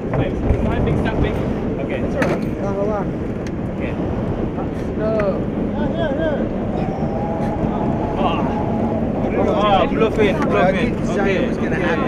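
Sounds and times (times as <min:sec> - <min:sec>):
boat engine droning: 0:00.0 - 0:12.0
water noise: 0:00.0 - 0:12.0
wind on microphone: 0:00.0 - 0:12.0
voices talking: 0:04.8 - 0:12.0.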